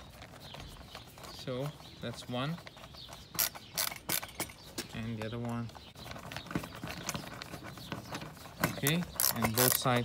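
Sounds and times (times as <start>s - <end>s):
screwdriver clicking and scraping: 3.4s - 4.6s.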